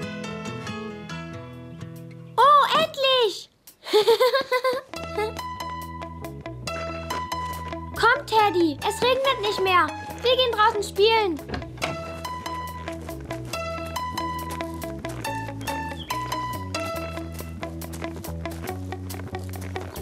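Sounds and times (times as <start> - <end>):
plucked-string background music: 0.0 - 2.4, 4.9 - 20.0.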